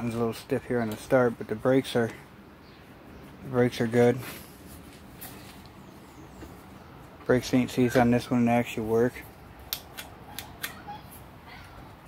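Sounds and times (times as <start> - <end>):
sharp light clicks: 9.7 - 10.8.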